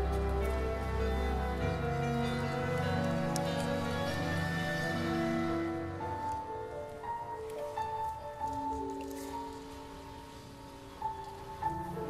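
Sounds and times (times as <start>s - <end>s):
slow instrumental music: 0.0s - 12.0s.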